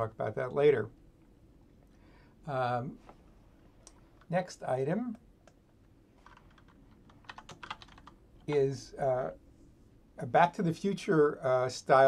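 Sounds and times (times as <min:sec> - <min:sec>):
keyboard typing: 0:06.2 - 0:08.6.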